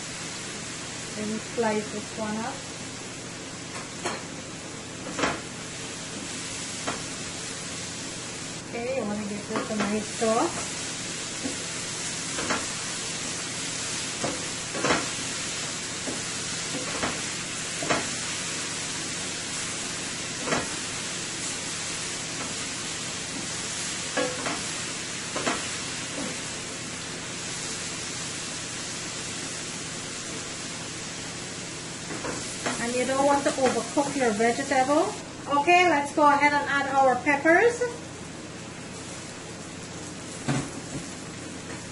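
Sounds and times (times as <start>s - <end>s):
vegetables sizzling in a pan: 0.0s - 41.9s.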